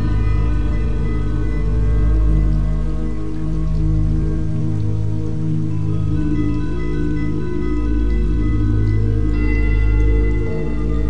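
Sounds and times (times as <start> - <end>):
layered drone tones: 0.0 - 11.0
soft even hiss: 0.0 - 11.0.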